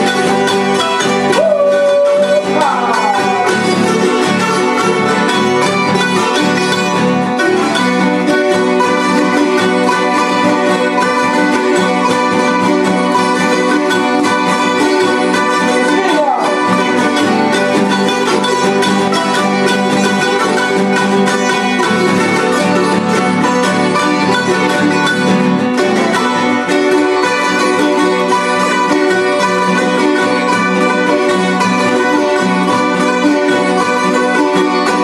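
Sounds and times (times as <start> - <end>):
plucked string ensemble: 0.0 - 35.0.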